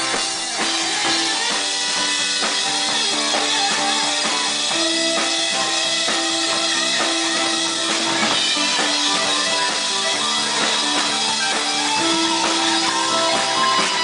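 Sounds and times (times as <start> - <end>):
drum kit beat: 0.0 - 14.0
electric guitar: 0.0 - 14.0
rock band playing loudly: 0.0 - 14.0.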